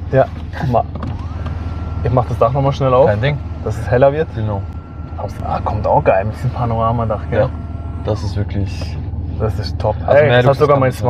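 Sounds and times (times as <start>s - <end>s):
electric motor whine: 0.1s - 11.0s.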